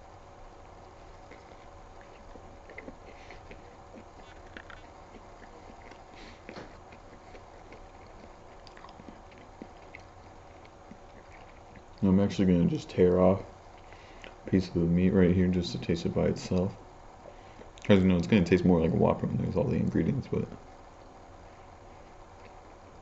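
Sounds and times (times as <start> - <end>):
steady low hum: 0.0 - 23.0
person chewing food: 0.6 - 12.0, 13.5 - 14.5, 17.2 - 18.3, 20.8 - 23.0
mouth clicks and smacks: 1.2 - 12.0, 13.7 - 14.5.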